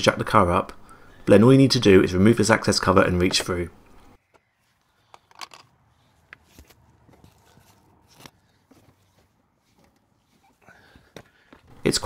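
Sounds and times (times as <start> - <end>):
faint clicks and rustles of plastic: 4.2 - 11.5.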